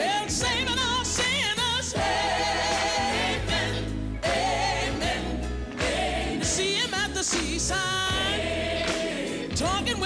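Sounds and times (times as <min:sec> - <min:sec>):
choir singing held notes: 0:02.0 - 0:07.0, 0:08.1 - 0:09.5.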